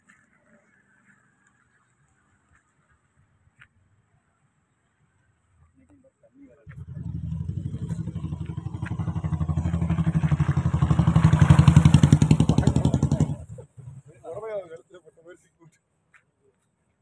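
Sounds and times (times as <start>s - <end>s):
small motorcycle engine running: 6.7s - 13.5s.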